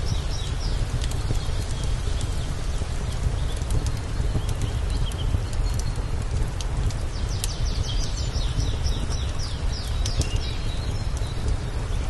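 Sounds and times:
wind rumble on microphone: 0:00.0 - 0:12.0
wood fire crackling: 0:00.0 - 0:12.0.

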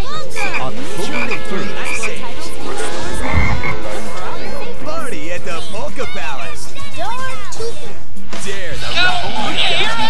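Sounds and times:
cartoon music and tones: 0:00.0 - 0:07.0
cartoon frogs croaking: 0:00.4 - 0:04.0
low thump: 0:02.8 - 0:05.0.

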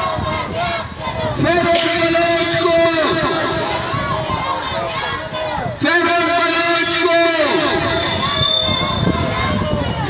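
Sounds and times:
crowd noise: 0:00.0 - 0:10.0
man shouting into a microphone: 0:01.3 - 0:04.1, 0:04.7 - 0:10.0.

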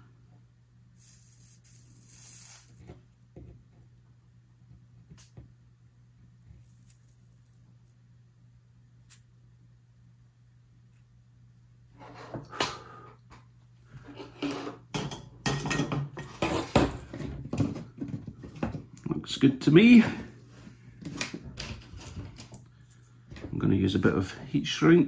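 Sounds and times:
faint low hum: 0:00.0 - 0:25.0.

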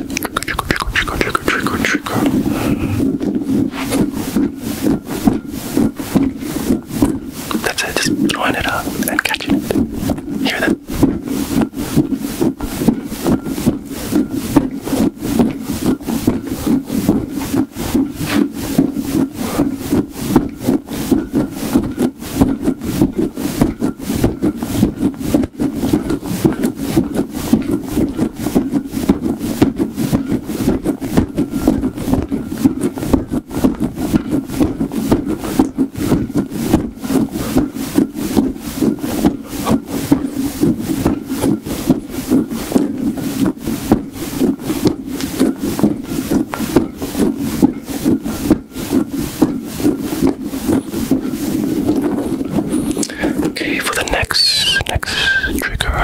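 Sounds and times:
squishy ball rubbed between hands: 0:00.0 - 0:56.0.

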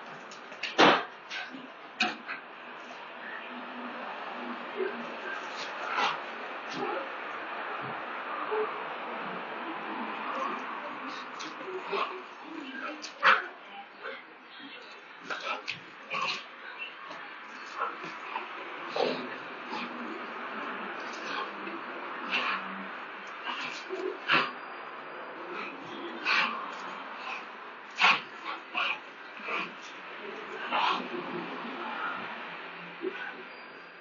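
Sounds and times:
dog growling: 0:15.2 - 0:24.7, 0:25.4 - 0:32.2.

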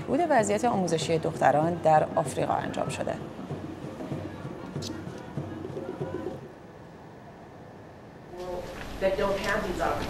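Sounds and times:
bird calling low: 0:02.7 - 0:06.5.

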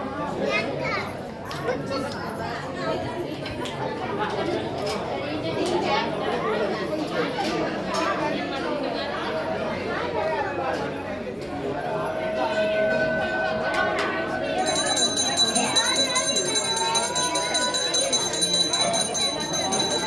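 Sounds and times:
people chattering: 0:00.0 - 0:20.0.

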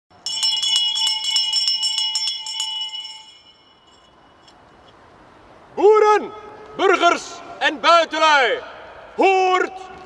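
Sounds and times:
hand bell ringing rapidly: 0:00.2 - 0:04.5.

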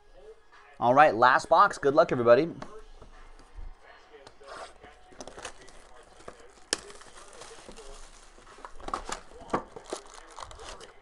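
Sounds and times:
plastic shrink-wrap crinkling and tearing: 0:05.2 - 0:11.0.

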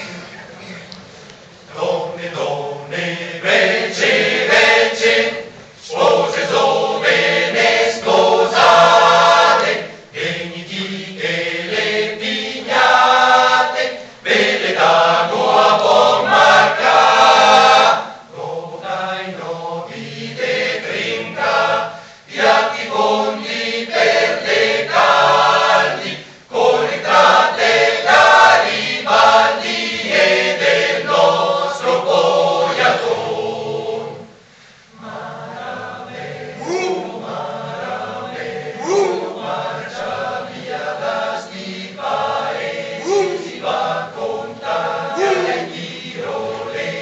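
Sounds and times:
male choir singing a cappella: 0:01.7 - 0:47.0.

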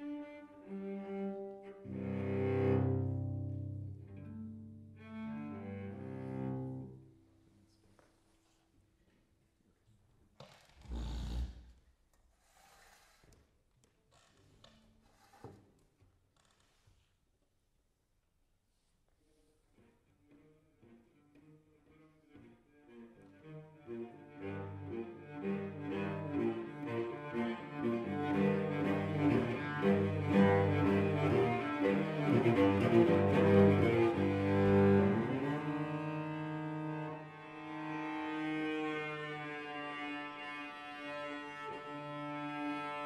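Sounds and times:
bowed cellos playing: 0:00.0 - 0:07.2, 0:19.7 - 0:43.0.

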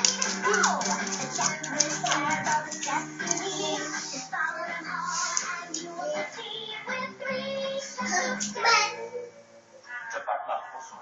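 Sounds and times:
cartoon music from television: 0:00.0 - 0:11.0.

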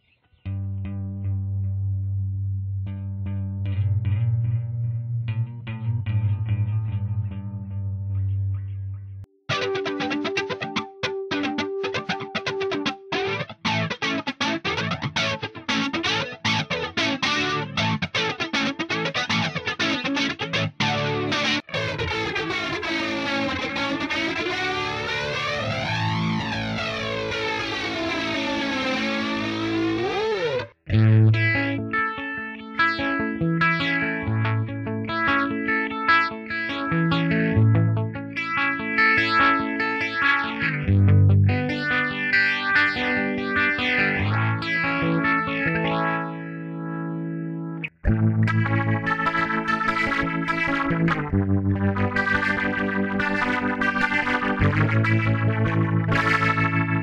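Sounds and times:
electric guitar with flanger: 0:00.0 - 0:57.0
distorted guitar chords: 0:00.5 - 0:57.0.

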